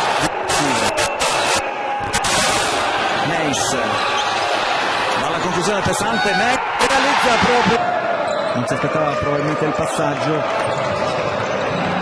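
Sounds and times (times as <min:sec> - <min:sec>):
arena crowd hubbub: 0:00.0 - 0:12.0
commentator's voice: 0:05.2 - 0:07.8.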